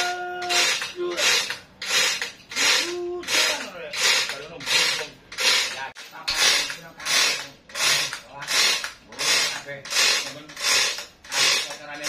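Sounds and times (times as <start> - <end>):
rhythmic rasping strokes: 0.0 - 12.0.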